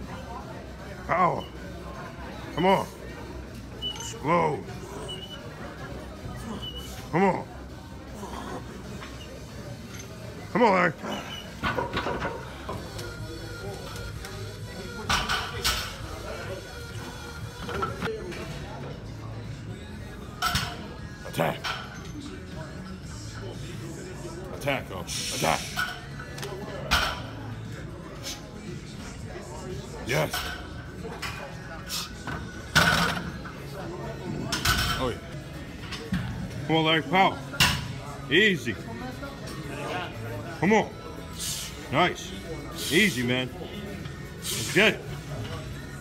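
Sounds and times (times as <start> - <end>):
background music: 12.8 - 46.0.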